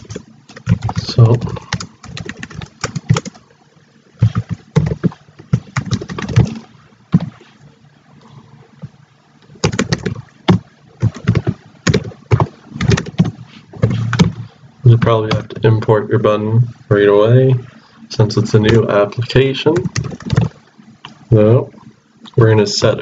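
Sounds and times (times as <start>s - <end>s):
computer keyboard typing: 0.0s - 3.4s, 4.2s - 6.6s, 9.6s - 15.6s, 19.8s - 20.6s.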